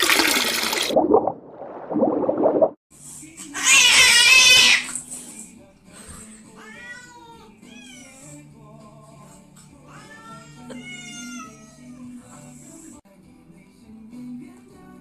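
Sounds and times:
splashing sound effect: 0:00.0 - 0:02.8
cat meowing: 0:09.9 - 0:11.9.

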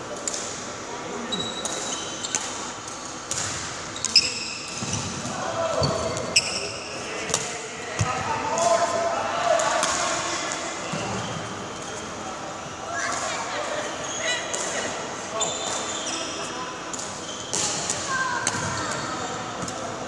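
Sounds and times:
shoe squeaks on floor: 0:01.3 - 0:03.2, 0:03.9 - 0:07.0, 0:15.4 - 0:16.6, 0:17.2 - 0:17.8.

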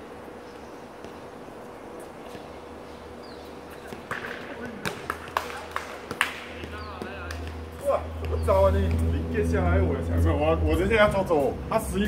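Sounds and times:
players' voices: 0:03.5 - 0:12.0.

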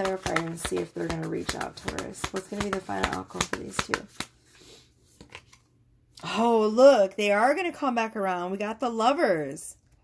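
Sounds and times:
cards rustling: 0:00.0 - 0:04.5.

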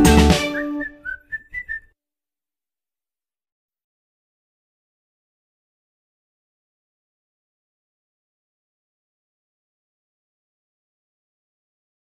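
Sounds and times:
whistled music notes: 0:00.0 - 0:01.9.

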